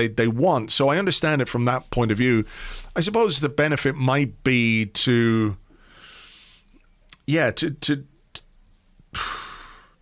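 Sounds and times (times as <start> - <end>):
man breathing in: 2.5 - 2.9, 5.7 - 6.8, 9.1 - 10.0
mouth click: 6.8 - 7.3.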